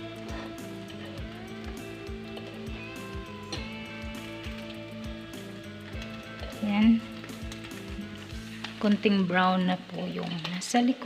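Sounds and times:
background music with steady beat: 0.0s - 10.0s
bread sizzling in a pan: 0.1s - 11.0s.

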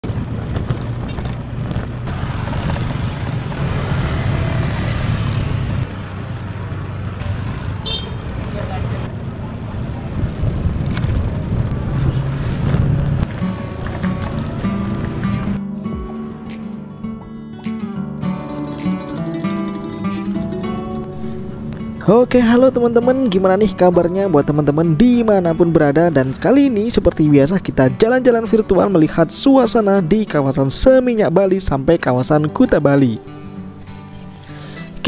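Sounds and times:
motorbike and scooter traffic: 0.0s - 15.6s.

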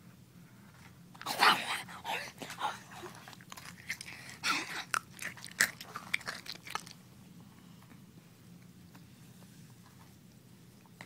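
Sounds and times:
crunchy chewing and biting: 1.2s - 7.1s.

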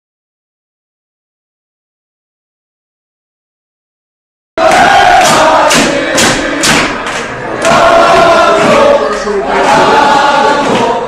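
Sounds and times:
crowd chanting in unison: 4.6s - 11.0s
rhythmic clapping: 4.6s - 11.0s.

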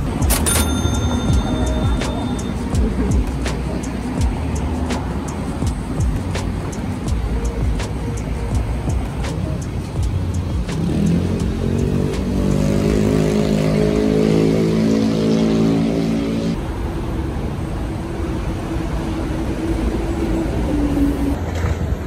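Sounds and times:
sustained music tones: 0.0s - 16.6s
street traffic rumble: 0.0s - 22.0s.

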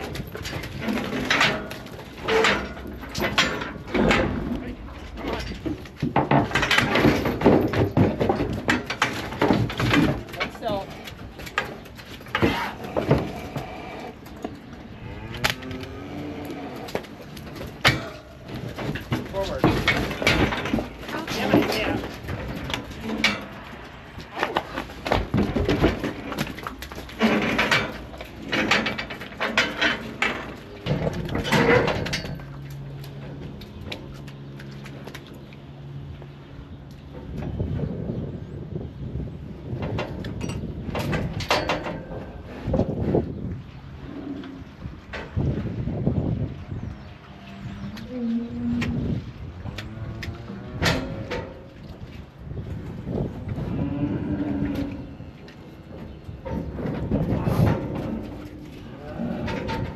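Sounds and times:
metal gates clanging and rattling: 0.0s - 16.1s, 16.8s - 34.2s, 39.7s - 42.7s, 49.9s - 52.0s, 53.8s - 59.9s
indistinct voices: 19.1s - 22.3s.

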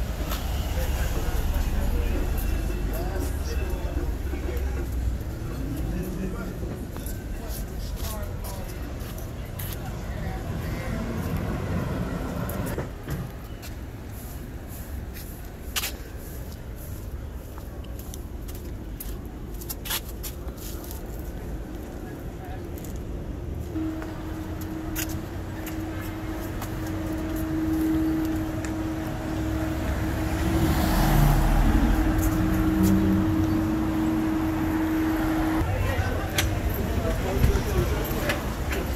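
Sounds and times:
indistinct voices: 0.0s - 13.3s, 23.7s - 38.9s
low rumble of traffic: 0.0s - 38.9s
vehicle passing: 23.8s - 38.9s.

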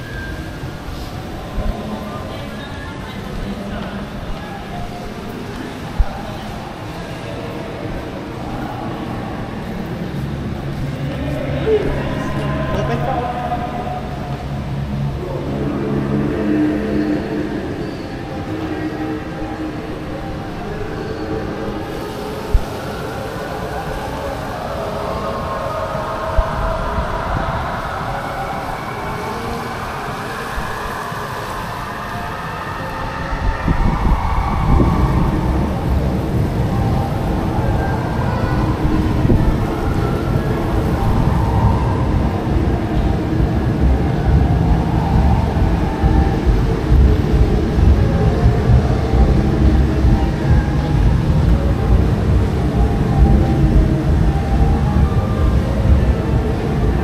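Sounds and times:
wind rumble on microphone: 0.0s - 29.2s, 32.0s - 57.0s
background murmur: 0.0s - 57.0s.

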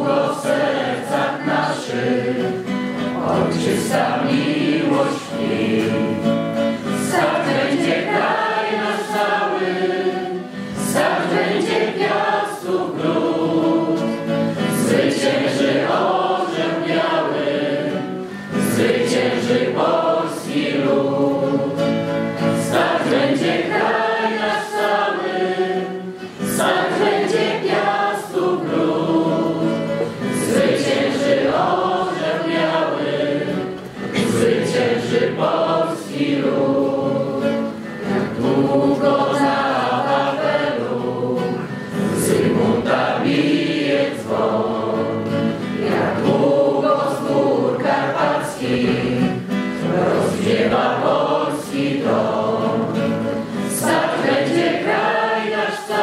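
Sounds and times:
group singing in chorus: 0.0s - 56.0s.

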